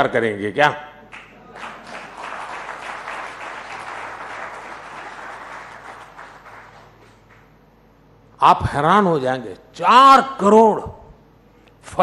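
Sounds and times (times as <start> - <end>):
audience applauding: 1.1 - 7.4.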